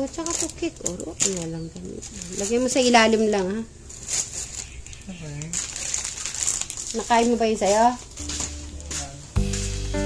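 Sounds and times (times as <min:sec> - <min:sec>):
crinkling and rustling: 0:00.0 - 0:09.8.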